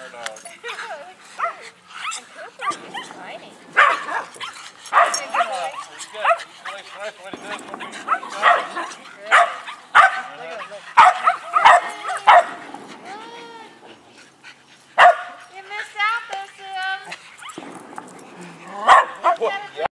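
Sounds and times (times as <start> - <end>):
dog whining and yipping: 1.4 - 6.2, 17.3 - 17.6
dogs barking: 1.4 - 16.1, 16.7 - 19.8.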